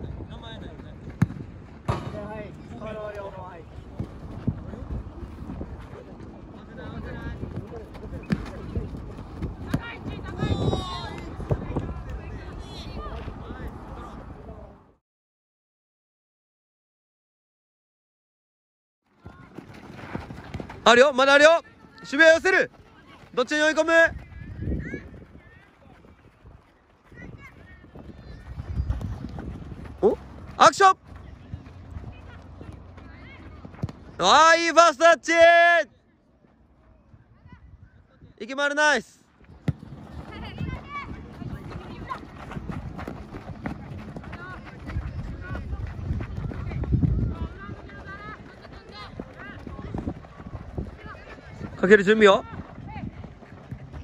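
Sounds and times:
running footsteps on dirt: 3.0s - 13.4s, 19.0s - 34.4s, 39.2s - 54.0s.

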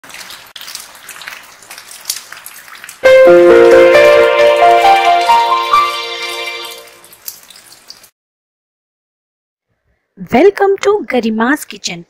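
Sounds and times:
rain pattering: 0.0s - 8.1s
keyboard music held notes: 3.0s - 7.0s.

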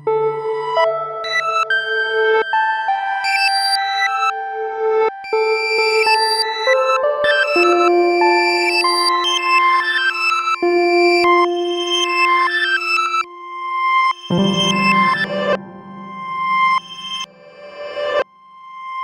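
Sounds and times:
ambient electronic music: 0.0s - 18.2s.

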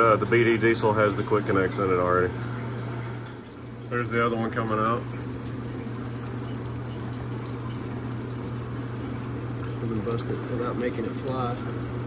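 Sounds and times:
steady low hum: 0.0s - 12.0s
fluid trickling into drain pan: 3.1s - 12.0s.

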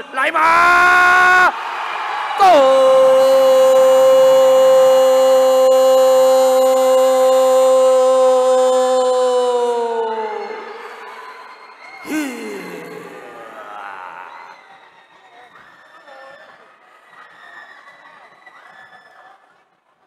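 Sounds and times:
man calling out long word: 2.4s - 10.6s, 12.1s - 14.4s.

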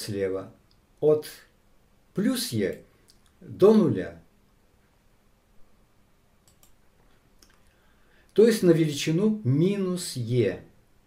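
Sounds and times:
faint computer mouse clicks: 6.4s - 7.7s.

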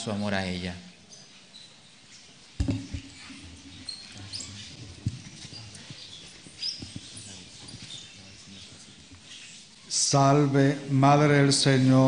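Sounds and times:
knocks and shuffling on stone floor: 2.2s - 9.7s.

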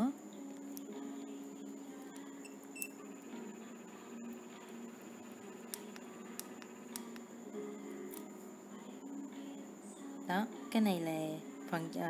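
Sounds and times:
steady low hum: 0.0s - 12.0s
faint clicks: 5.7s - 7.3s.

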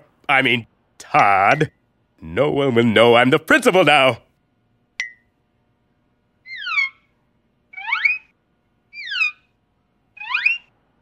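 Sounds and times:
whistled gliding calls: 6.5s - 7.1s, 7.8s - 8.3s, 8.9s - 9.5s, 10.2s - 10.7s.

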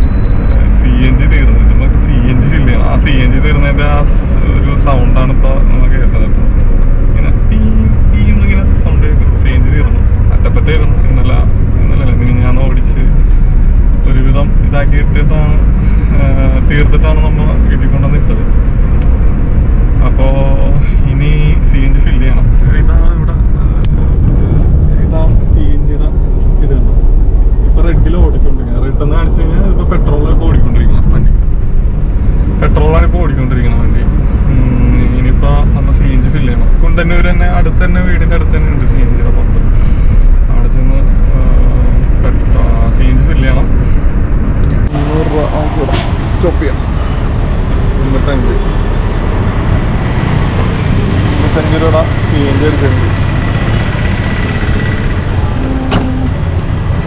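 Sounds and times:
car driving rumble inside cabin: 0.0s - 57.0s
man talking: 0.6s - 6.5s, 7.1s - 13.4s, 14.0s - 18.5s, 20.0s - 27.0s, 27.6s - 31.5s, 32.6s - 39.7s, 40.4s - 43.9s, 44.7s - 46.9s, 47.8s - 48.8s, 51.1s - 53.2s.

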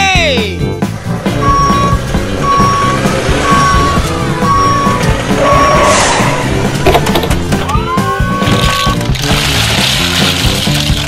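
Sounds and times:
background music: 0.0s - 11.0s
truck reversing alarm beeping: 1.2s - 6.8s.

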